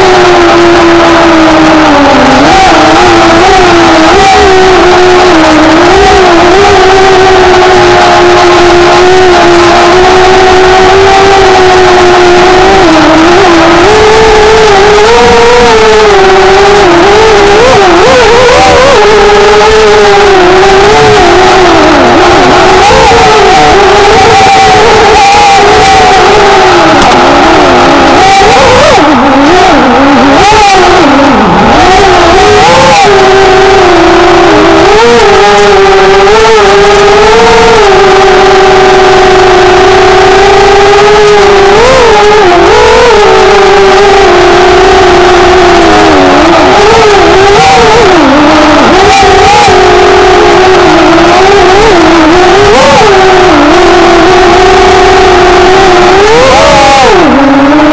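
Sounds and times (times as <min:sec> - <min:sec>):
drone propellers whining: 0:00.0 - 0:57.9
small engine revving: 0:00.0 - 0:57.9.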